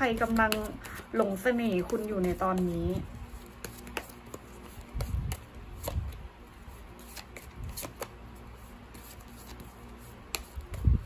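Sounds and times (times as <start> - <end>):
cards flicking and tapping: 0.0 - 6.2, 6.9 - 11.0.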